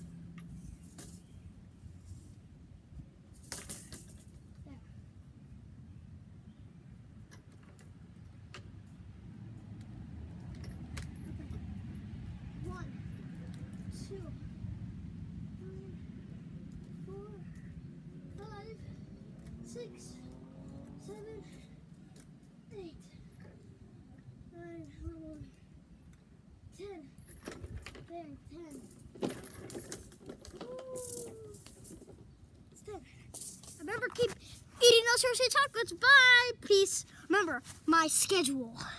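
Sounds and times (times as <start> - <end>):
metal swing chains clinking: 10.4 - 12.1, 26.9 - 34.7.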